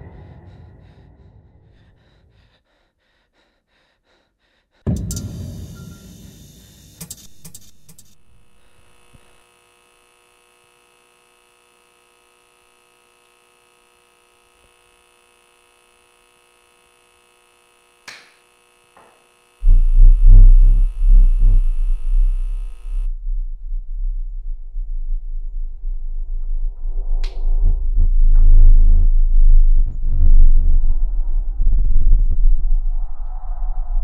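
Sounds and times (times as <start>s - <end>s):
deep bass rumble: 0.0s - 1.9s, 19.6s - 34.0s
faint steady tones: 18.6s - 23.1s
impact hit: 19.6s - 23.0s.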